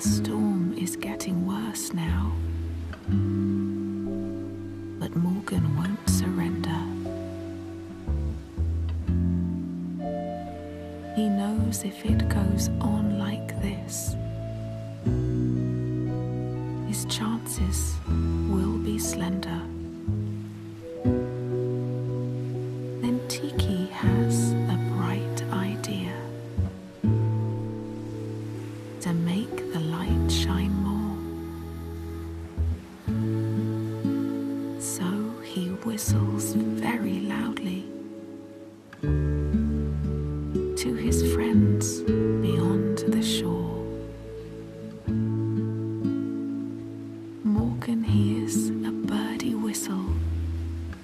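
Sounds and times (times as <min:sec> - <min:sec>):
gentle instrumental backing: 0:00.0 - 0:51.0
lullaby sung softly: 0:00.0 - 0:51.0.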